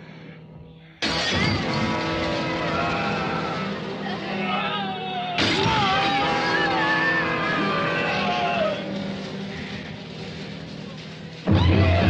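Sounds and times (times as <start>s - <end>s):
heavy orchestral hit: 1.0s - 12.0s
dissonant orchestral chord: 1.6s - 11.4s.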